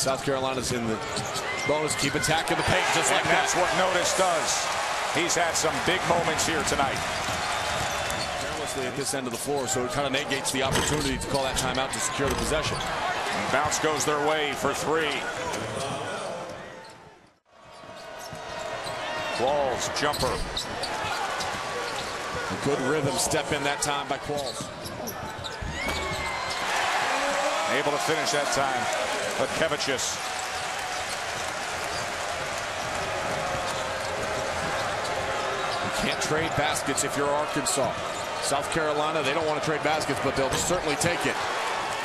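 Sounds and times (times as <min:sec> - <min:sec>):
arena crowd noise: 0:00.0 - 0:42.0.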